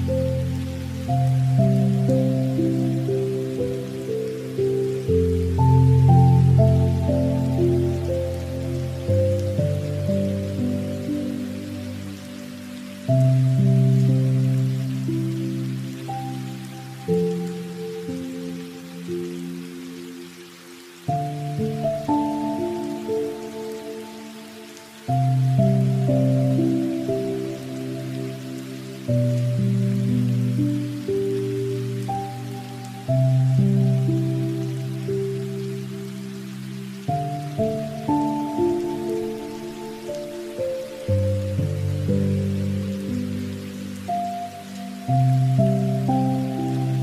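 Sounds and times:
rain hissing: 0:00.0 - 0:47.0
soft music of sustained chords: 0:00.0 - 0:47.0.

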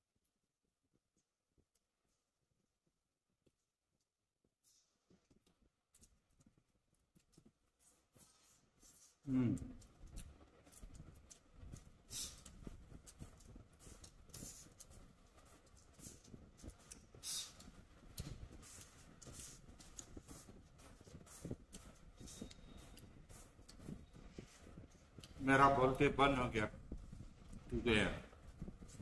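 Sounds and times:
chewing and mouth noises: 0:04.6 - 0:29.0.

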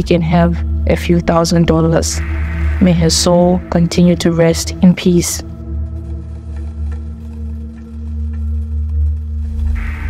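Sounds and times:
dark ambient drone music: 0:00.0 - 0:10.0.

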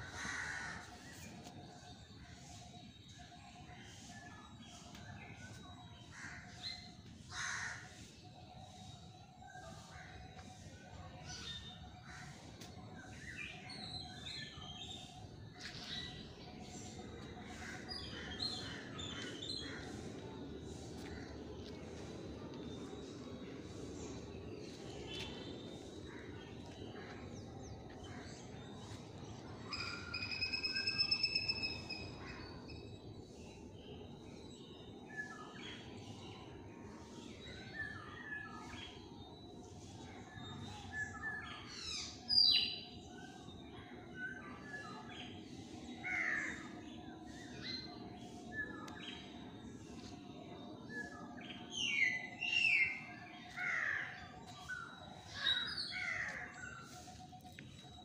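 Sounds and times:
low outdoor background noise: 0:00.0 - 0:58.0.

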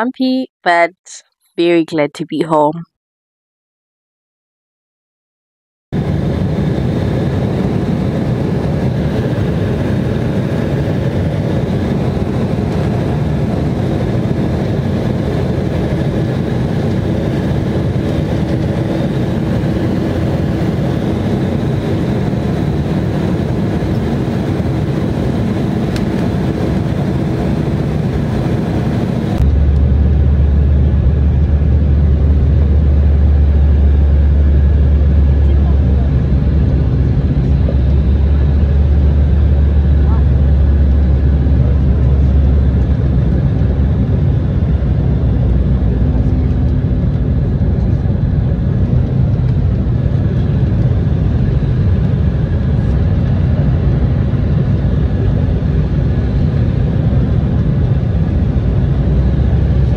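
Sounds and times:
airliner engine rumble: 0:06.0 - 0:59.9.

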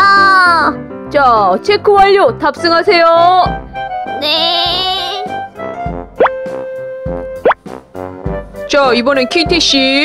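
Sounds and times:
background music steady note: 0:00.0 - 0:10.0
cartoon plop sound effect: 0:06.2 - 0:06.4.

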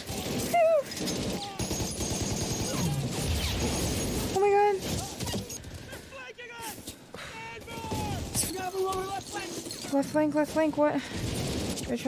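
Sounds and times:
machine-gun and rifle fire: 0:00.0 - 0:05.7, 0:10.5 - 0:12.0.

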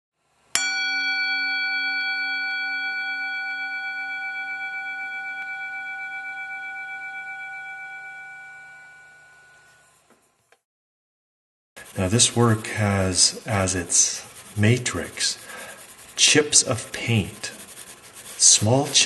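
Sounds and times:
struck bell ringing: 0:00.6 - 0:09.8.

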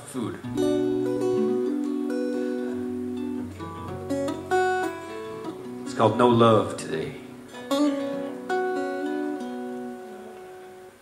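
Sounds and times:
acoustic guitar chord plucked: 0:00.4 - 0:11.0.

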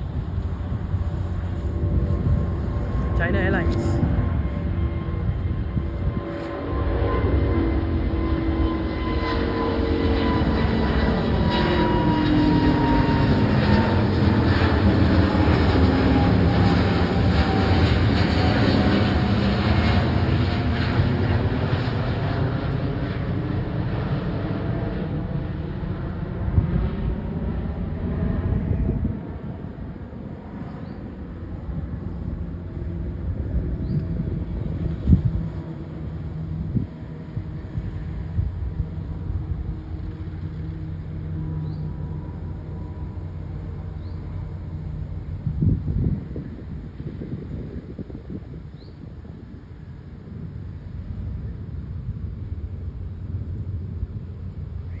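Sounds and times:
jet airliner passing overhead: 0:00.0 - 0:55.0.

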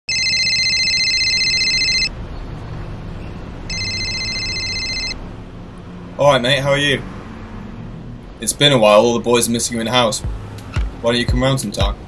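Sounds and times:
trilling phone ringtone: 0:00.1 - 0:02.1, 0:03.7 - 0:05.2.

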